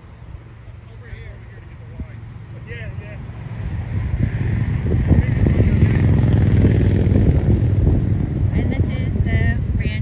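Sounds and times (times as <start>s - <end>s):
vehicle passing with low rumble: 0.0s - 10.0s.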